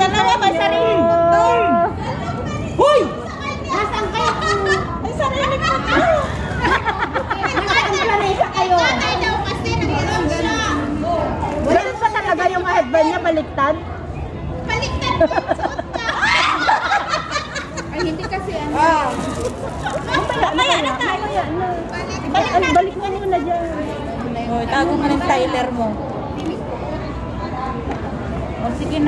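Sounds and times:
women chattering: 0.0 - 29.0
women laughing: 4.0 - 8.8, 15.0 - 21.5
women talking: 17.7 - 26.5.

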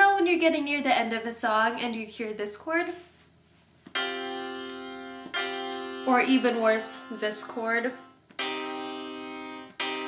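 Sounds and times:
piano chord: 3.9 - 10.0.

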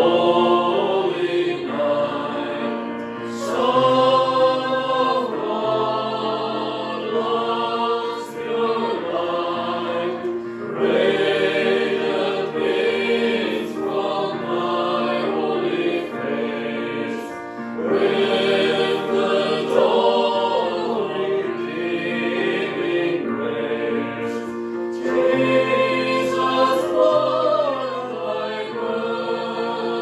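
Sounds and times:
mixed choir singing a hymn: 0.0 - 30.0.

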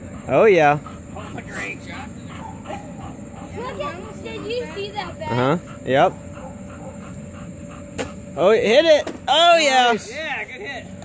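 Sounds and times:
thin steady high tone: 0.0 - 7.8.

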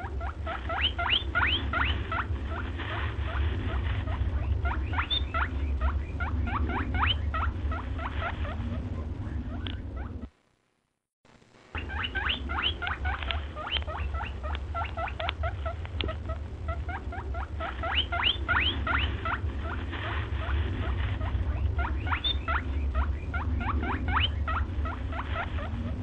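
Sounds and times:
small animal squeaking chirps: 0.0 - 2.6, 3.2 - 10.3, 11.8 - 19.8, 20.4 - 26.0
steady low hum: 0.0 - 26.0.

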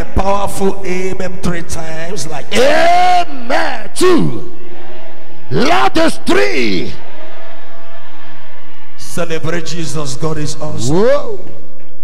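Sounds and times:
congregation shouting praise: 2.5 - 10.0.

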